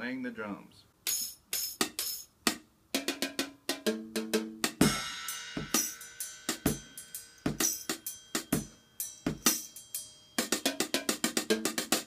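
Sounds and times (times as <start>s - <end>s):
drum set played with sticks: 1.0s - 12.0s
heavy drum hit with low thump: 4.8s - 5.8s
bell-like pitched notes: 6.0s - 10.7s.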